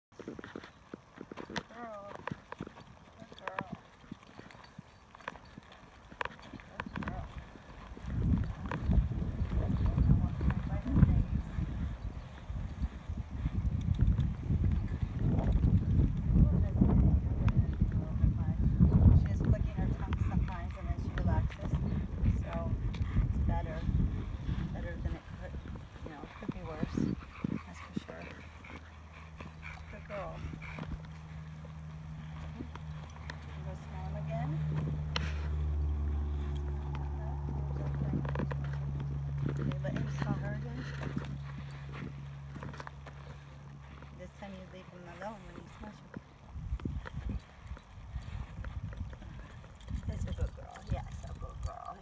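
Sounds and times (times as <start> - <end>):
footsteps on dirt path: 0.1 - 52.0
wind rumble on microphone: 0.2 - 52.0.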